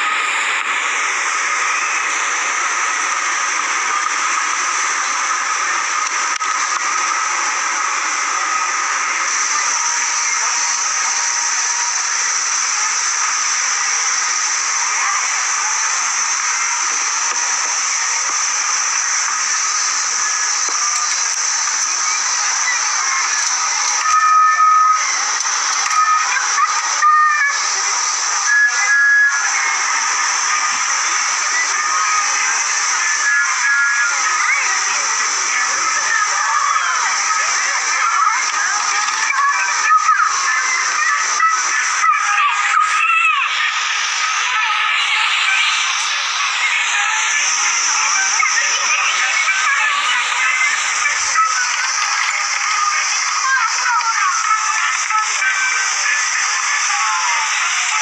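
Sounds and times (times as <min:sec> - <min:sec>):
loud hissing noise: 0:00.0 - 0:58.0.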